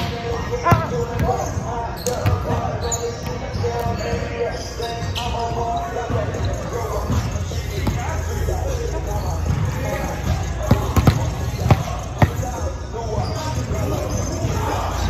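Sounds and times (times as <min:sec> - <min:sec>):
players chatting: 0:00.0 - 0:15.0
ball bouncing on wooden floor: 0:10.7 - 0:12.4.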